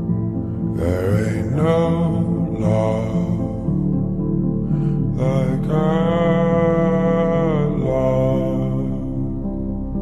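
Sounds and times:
low music accompaniment: 0:00.0 - 0:10.0
man singing long note: 0:00.8 - 0:03.8, 0:05.2 - 0:09.3.

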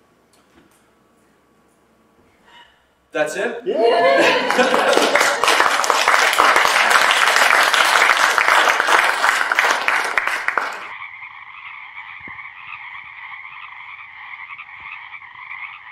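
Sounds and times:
audience applauding: 0:03.8 - 0:10.9.

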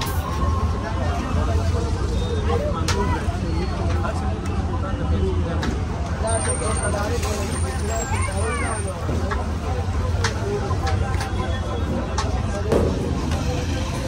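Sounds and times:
low rumble of traffic: 0:00.0 - 0:14.0
many people talking: 0:00.0 - 0:14.0.

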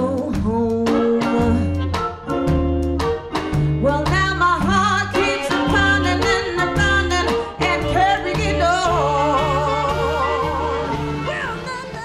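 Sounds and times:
drums: 0:00.0 - 0:12.0
walking bass line: 0:00.0 - 0:12.0.

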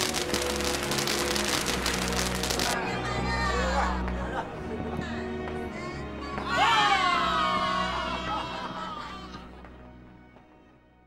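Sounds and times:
firework crackling hiss: 0:00.0 - 0:02.8
soft background music: 0:00.0 - 0:11.0.

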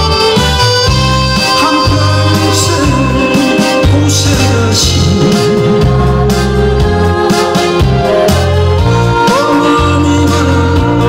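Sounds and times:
instrumental song backing music: 0:00.0 - 0:11.0.

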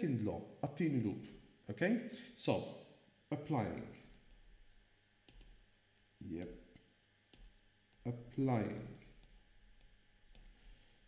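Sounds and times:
stylus tapping on drawing tablet: 0:05.2 - 0:05.6, 0:07.3 - 0:07.6.

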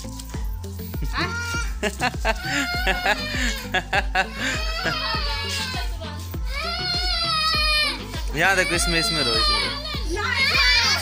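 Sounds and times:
music with deep bass beat: 0:00.0 - 0:11.0.

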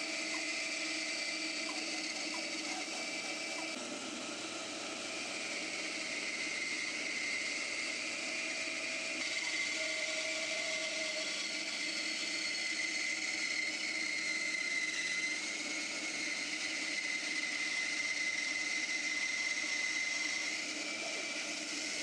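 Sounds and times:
bandsaw cutting plywood: 0:00.0 - 0:22.0.

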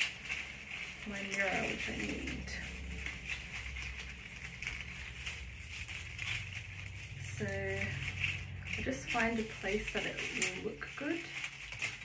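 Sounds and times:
dried flowers rustling and crackling: 0:00.0 - 0:12.0
low room hum: 0:00.0 - 0:12.0.

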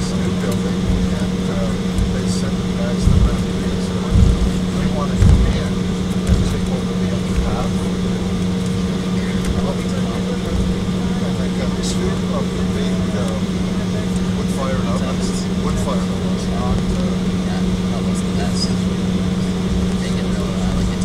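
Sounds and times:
jet engines humming: 0:00.0 - 0:21.0
low bumps: 0:00.0 - 0:21.0.

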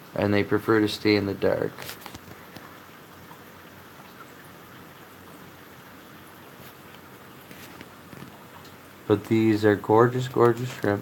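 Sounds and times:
aquarium filter bubbling and trickling: 0:00.0 - 0:11.0.

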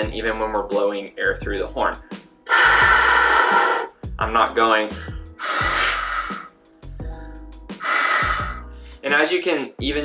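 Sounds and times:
air rushing through clarinet: 0:05.4 - 0:06.5, 0:07.8 - 0:08.6.

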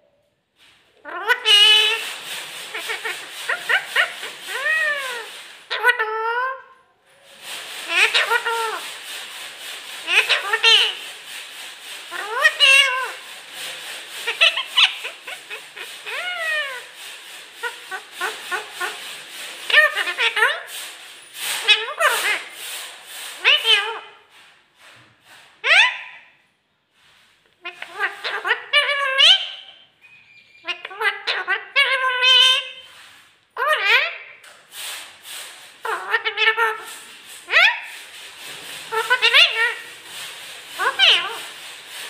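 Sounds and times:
parakeet speech-like calls: 0:01.0 - 0:06.7, 0:07.4 - 0:24.2, 0:25.6 - 0:26.2, 0:27.6 - 0:33.0, 0:33.6 - 0:34.4, 0:35.8 - 0:38.2, 0:38.9 - 0:42.0.

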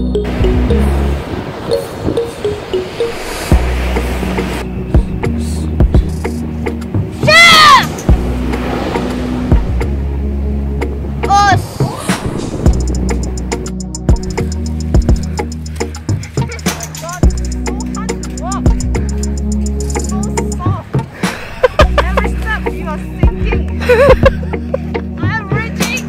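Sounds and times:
background music: 0:00.0 - 0:26.0
child shouting: 0:07.2 - 0:07.9, 0:11.3 - 0:11.6.

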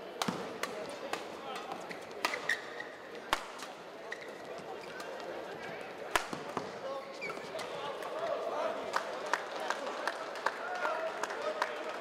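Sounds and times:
murmur of arena crowd: 0:00.0 - 0:12.0
racket striking shuttlecock: 0:00.2 - 0:02.6, 0:03.3 - 0:03.7.

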